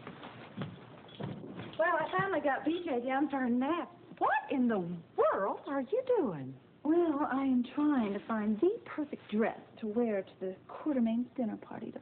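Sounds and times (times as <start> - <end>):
footsteps on hard floor: 0.0 - 2.5
woman speaking: 1.8 - 12.0.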